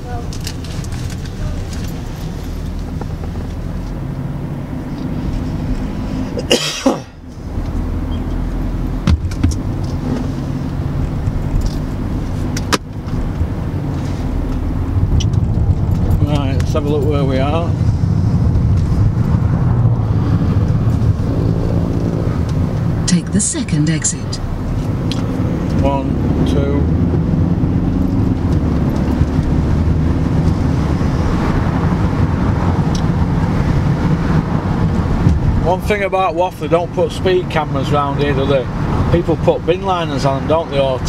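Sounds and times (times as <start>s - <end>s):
road and engine noise in car: 0.0s - 41.0s.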